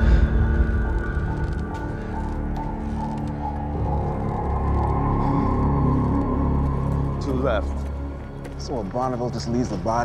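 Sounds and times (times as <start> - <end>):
ominous horror score drone: 0.0 - 8.6.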